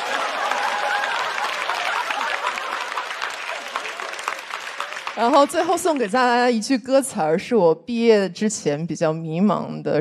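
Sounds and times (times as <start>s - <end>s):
audience applauding: 0.0s - 6.4s.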